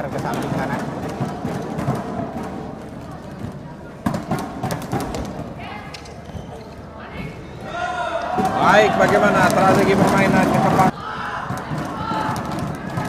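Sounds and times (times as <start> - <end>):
arena crowd noise: 0.0 - 13.0.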